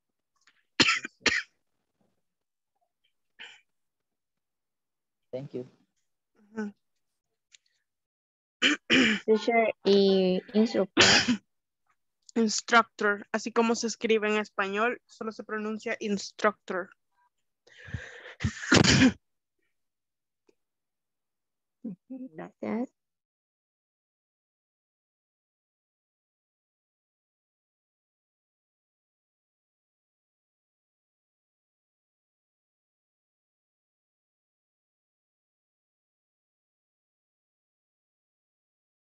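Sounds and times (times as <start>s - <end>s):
person coughing: 0.8s - 1.5s, 8.6s - 9.4s, 10.9s - 11.4s, 18.4s - 19.2s
noisy breath drawn in: 17.7s - 18.4s.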